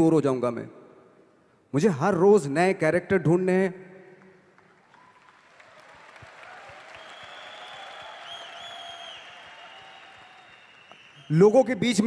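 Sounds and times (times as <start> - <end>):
audience applauding: 4.5 - 11.5.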